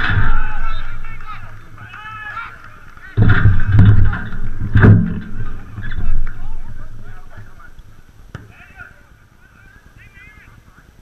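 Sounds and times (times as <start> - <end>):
loud deep noise: 0.0 - 8.3
distant players shouting: 0.0 - 10.8.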